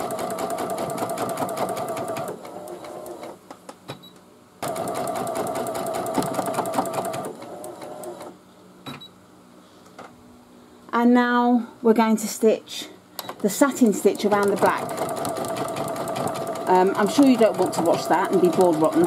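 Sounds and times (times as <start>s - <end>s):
embroidery machine stitching: 0.0s - 3.3s, 4.6s - 8.3s, 13.8s - 19.0s.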